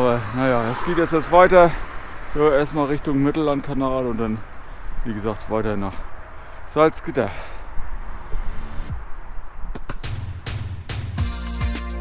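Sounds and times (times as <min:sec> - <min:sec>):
wind rumbling on microphone: 0:07.6 - 0:10.0
background music: 0:10.1 - 0:12.0.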